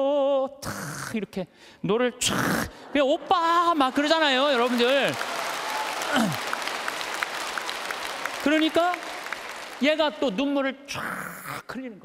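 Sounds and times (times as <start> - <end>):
audience applauding: 3.3 - 10.4.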